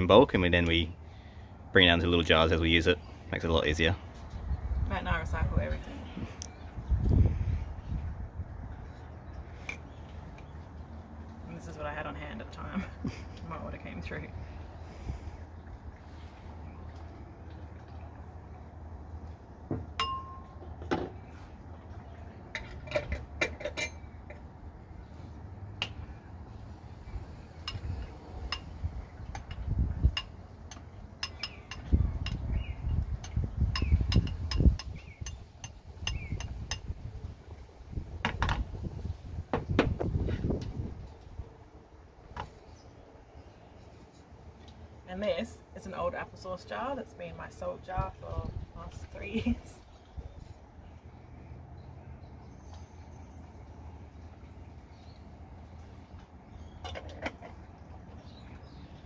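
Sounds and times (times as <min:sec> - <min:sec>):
glass bowl knocking: 0:20.0 - 0:20.6.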